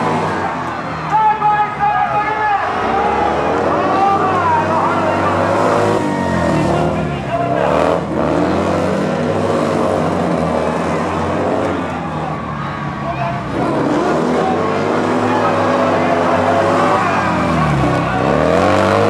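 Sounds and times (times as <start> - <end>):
racing engines revving: 0.0 - 19.0.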